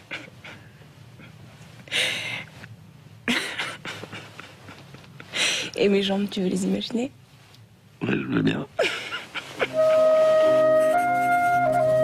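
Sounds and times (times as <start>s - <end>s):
woman's breathy laughter: 3.3s - 5.7s, 8.8s - 9.8s.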